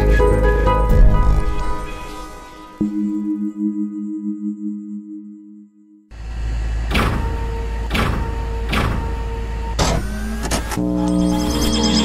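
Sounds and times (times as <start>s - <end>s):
layered electronic tones: 10.1s - 12.0s.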